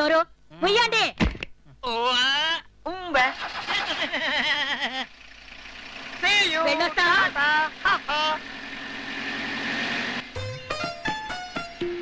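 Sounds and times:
car engine starting and running: 0:03.2 - 0:11.9.

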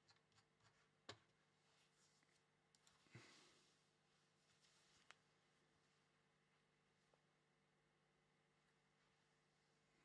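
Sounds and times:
soft rustle: 0:01.6 - 0:06.1.

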